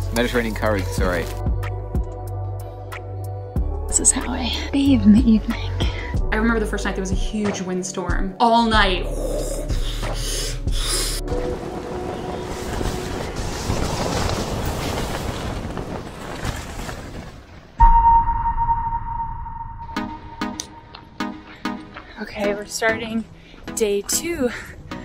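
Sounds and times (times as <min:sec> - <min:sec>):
music: 0:00.0 - 0:13.5, 0:17.8 - 0:25.0
loud steady high tone: 0:17.8 - 0:20.9.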